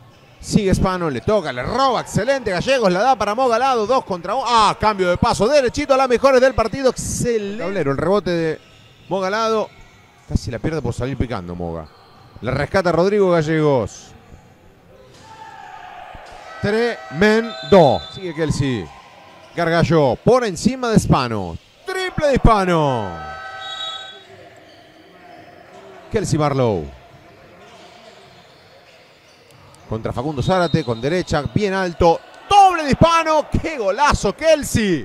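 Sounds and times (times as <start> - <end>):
faint drawn-out squeal: 7.5 - 10.9, 11.8 - 12.5, 15.3 - 19.6, 22.5 - 25.6, 27.7 - 31.6.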